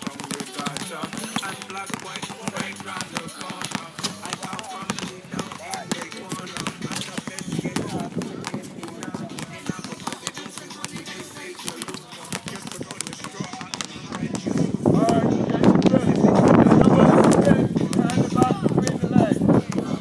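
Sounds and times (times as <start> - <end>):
basketballs bouncing on hard court: 0.0 - 20.0.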